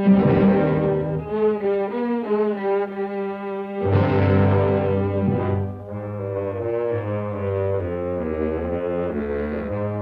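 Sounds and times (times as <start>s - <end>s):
orchestral low brass chords: 3.8s - 10.0s.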